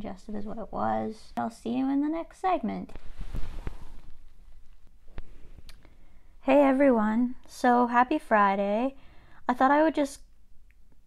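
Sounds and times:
faint rustling and clicks: 2.9 - 6.0
microphone handling thumps: 3.0 - 5.7.

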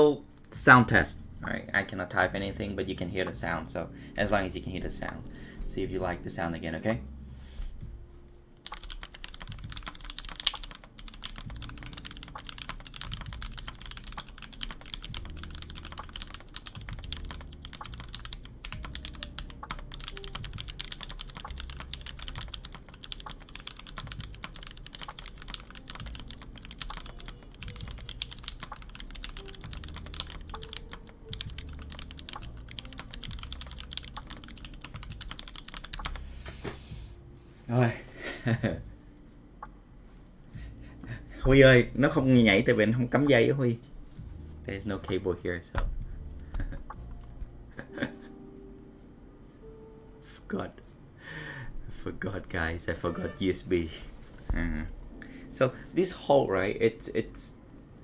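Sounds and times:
mechanical keyboard typing: 8.6 - 36.3.

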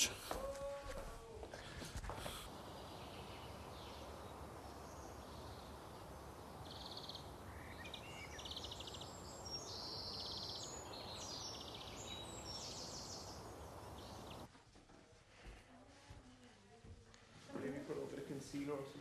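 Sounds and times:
outdoor background hiss: 0.0 - 19.0
small birds chirping: 1.6 - 14.5.

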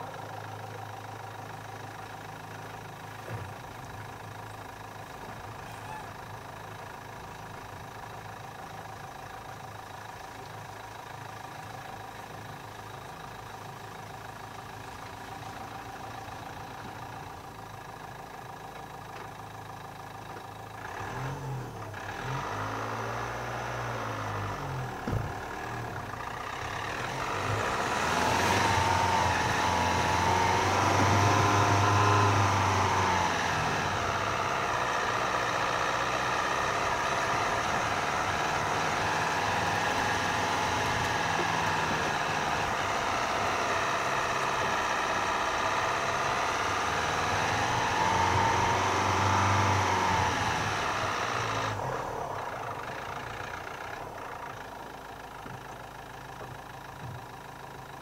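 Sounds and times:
car engine running: 0.0 - 58.0.

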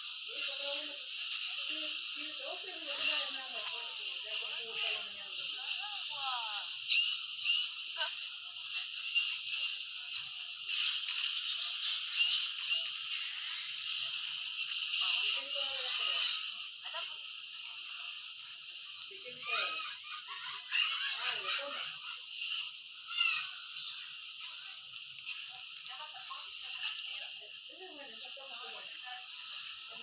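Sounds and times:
chattering voices: 0.0 - 30.0.

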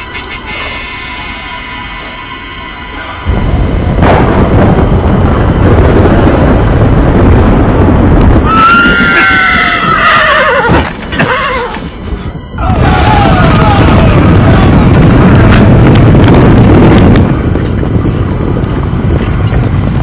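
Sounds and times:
loud low rumble: 0.0 - 10.0, 11.9 - 20.0
horse whinnying: 8.5 - 11.9.

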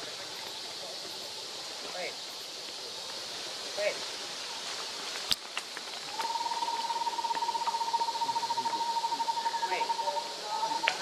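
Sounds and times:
forest background hiss: 0.0 - 11.0.

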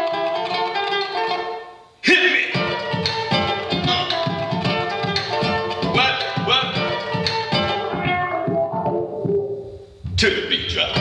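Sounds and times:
beatbox percussion: 2.5 - 11.0
plucked bass notes: 2.5 - 11.0.

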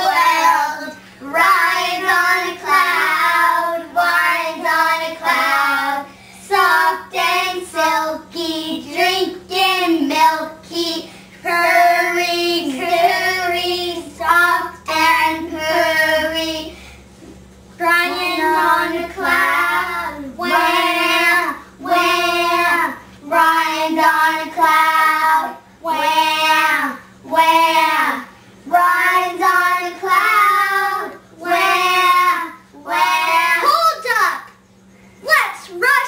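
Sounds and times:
girls singing slow tune: 0.0 - 33.7.

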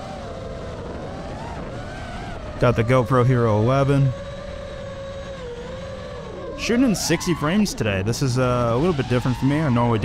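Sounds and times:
drone motors whining: 0.0 - 10.0.

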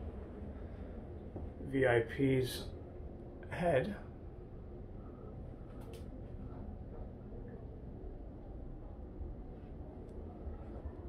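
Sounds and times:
air conditioning low rumble: 0.0 - 11.0
faint clicks: 5.7 - 6.1.

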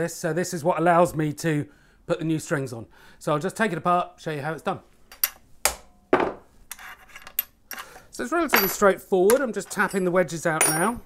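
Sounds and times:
metal clinks and taps: 5.1 - 7.8, 8.5 - 11.0.

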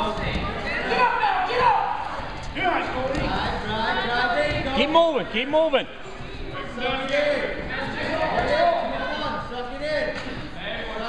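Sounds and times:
people calling out and talking: 0.0 - 11.0
people shouting: 0.7 - 2.2.

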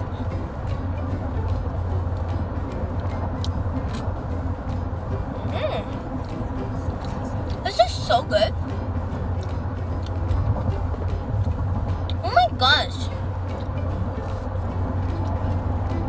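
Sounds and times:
car interior rumble: 0.0 - 16.0.

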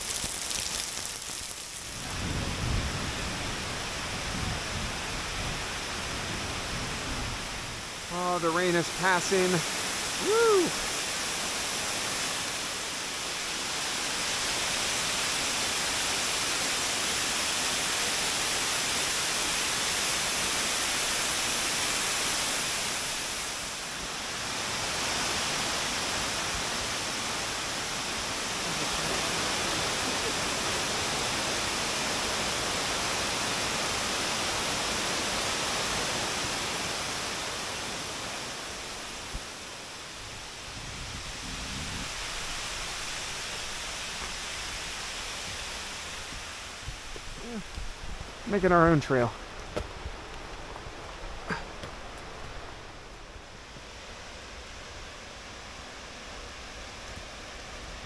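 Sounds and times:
waterfall rushing: 0.0 - 58.0.

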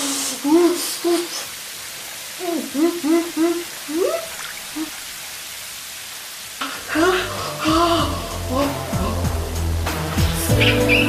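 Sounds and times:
steady even hiss: 0.0 - 11.0.

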